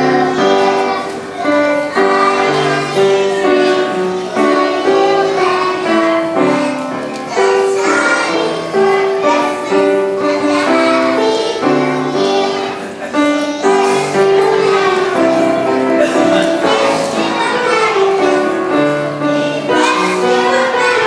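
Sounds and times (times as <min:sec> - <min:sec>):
children singing in unison: 0:00.0 - 0:21.0
musical accompaniment: 0:00.0 - 0:21.0.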